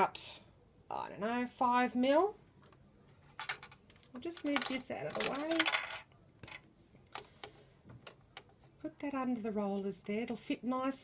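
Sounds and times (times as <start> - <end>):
faint clicks and taps: 2.6 - 5.8, 6.4 - 10.2.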